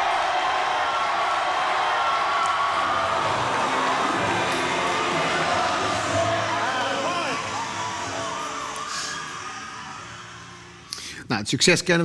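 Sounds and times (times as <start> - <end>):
stadium crowd cheering and shouting: 0.0 - 11.0.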